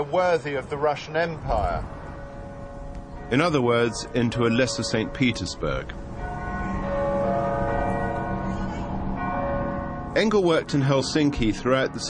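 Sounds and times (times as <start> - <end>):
church bells ringing: 0.0 - 12.0.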